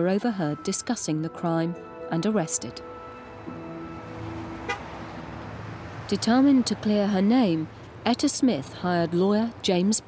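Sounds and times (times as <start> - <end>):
street traffic rumble: 0.0 - 10.0
car horn steady note: 2.9 - 5.1.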